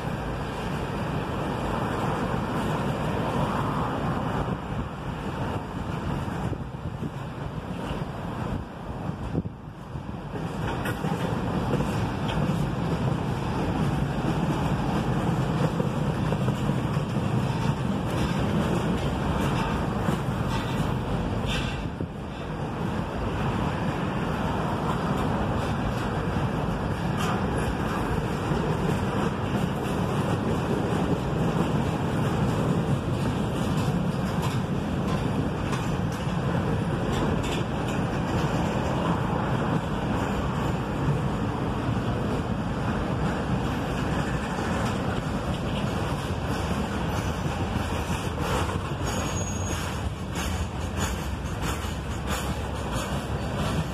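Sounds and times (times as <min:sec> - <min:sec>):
freight train wheels on track: 0:00.0 - 0:53.9.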